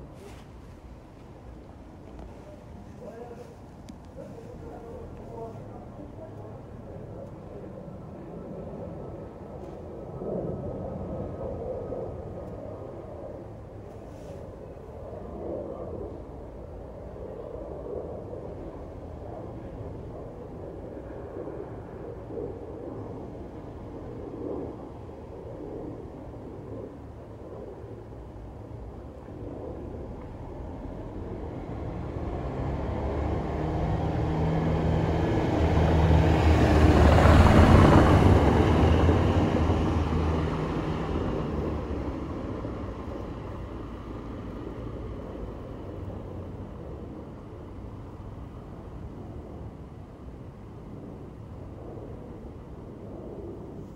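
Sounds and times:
vehicle engine passing by: 31.7s - 42.3s.

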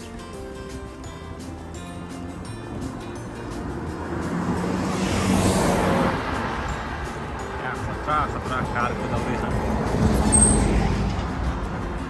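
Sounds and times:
car passing: 2.4s - 12.0s.

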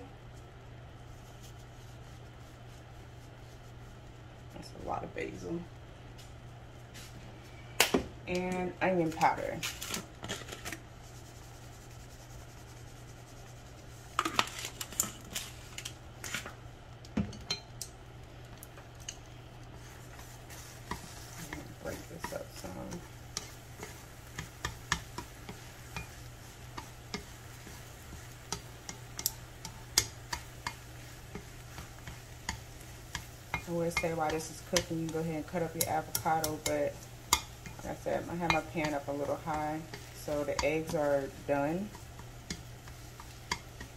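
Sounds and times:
eggs sizzling: 0.0s - 43.9s
steady low hum: 0.0s - 43.9s
chopsticks scraping frying pan: 19.8s - 43.9s.

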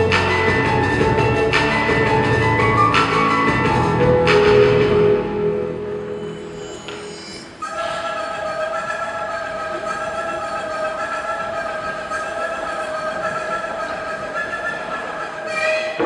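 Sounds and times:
held synth chord: 0.0s - 9.7s.

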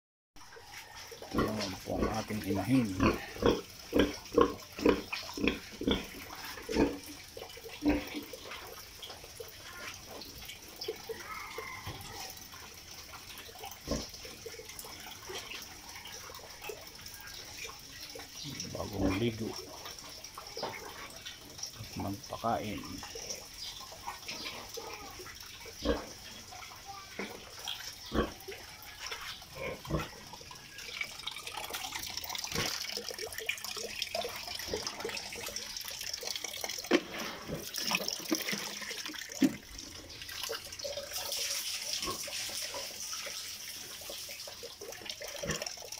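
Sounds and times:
running water: 0.4s - 45.9s
pig grunting: 1.3s - 7.0s.

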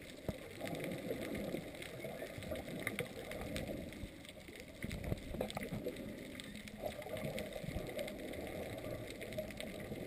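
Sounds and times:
faint underwater clicks: 0.0s - 10.0s
underwater rumble of moving water: 0.0s - 10.0s.

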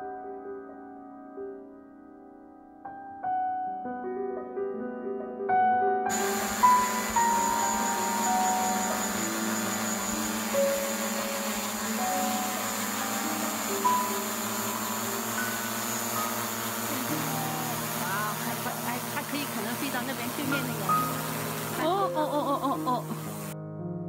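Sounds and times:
steady hiss: 6.1s - 21.9s, 22.5s - 23.6s
slow keyboard notes: 6.1s - 24.0s.

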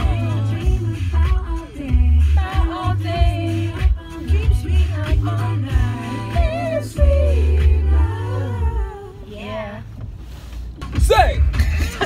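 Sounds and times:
woman singing: 0.0s - 9.8s
heavy bass: 0.0s - 12.0s.

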